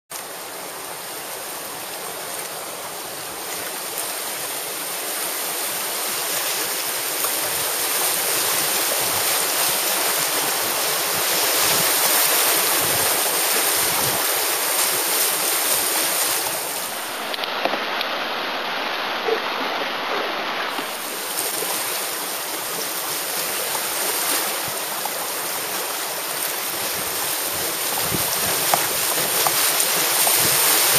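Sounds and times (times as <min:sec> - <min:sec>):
whitewater rushing: 0:00.1 - 0:30.9.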